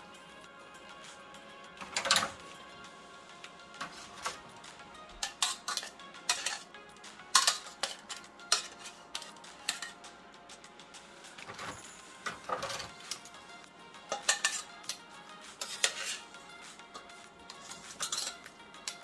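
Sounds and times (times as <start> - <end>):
soft background music: 0.0 - 19.0
metal tongs clinking on pan: 5.2 - 10.0, 14.1 - 16.3, 16.9 - 19.0.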